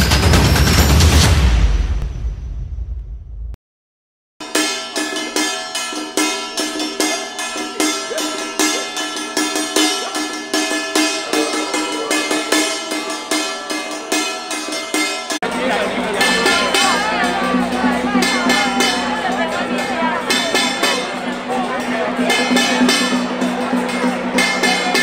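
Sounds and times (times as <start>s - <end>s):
cymbals struck: 4.4s - 25.0s
metal gongs struck: 4.4s - 25.0s.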